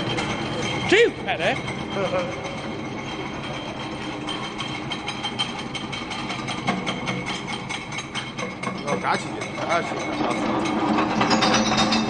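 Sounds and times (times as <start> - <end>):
glass crusher machine whine: 0.0 - 12.0.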